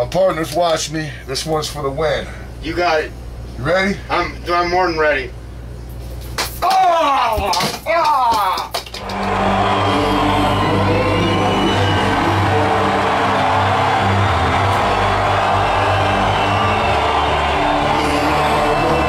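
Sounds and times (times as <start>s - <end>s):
crowd noise: 9.0s - 19.0s
loud music with low bass: 9.1s - 19.0s.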